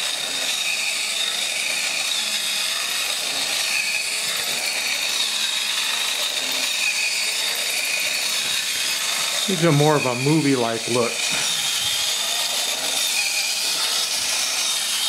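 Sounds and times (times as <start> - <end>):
small motor whirring and whining: 0.0 - 15.0.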